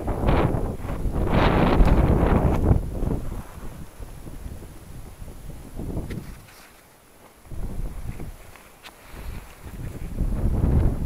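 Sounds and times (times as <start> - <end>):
wind buffeting microphone: 0.0 - 6.6, 7.4 - 11.0.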